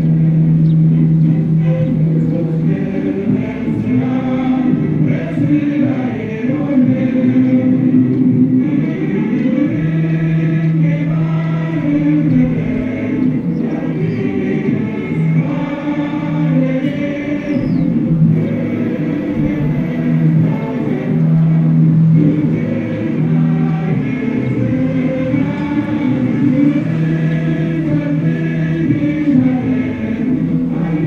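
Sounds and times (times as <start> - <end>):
choir singing held notes: 0.0 - 31.0.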